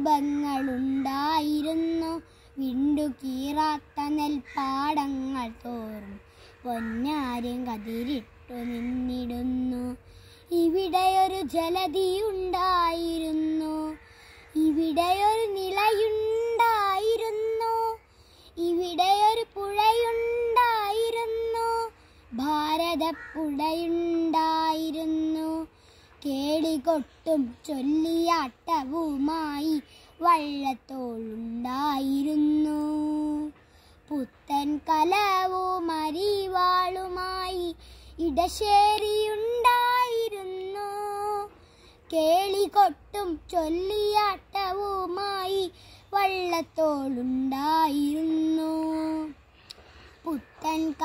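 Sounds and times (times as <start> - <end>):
boy singing unaccompanied: 0.0 - 51.0.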